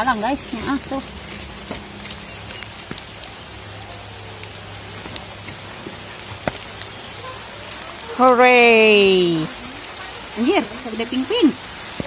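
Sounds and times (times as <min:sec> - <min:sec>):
rain falling steadily: 0:00.0 - 0:12.0.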